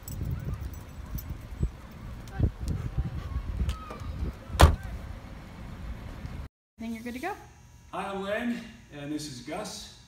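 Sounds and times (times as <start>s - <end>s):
car door slamming: 4.5s - 4.9s.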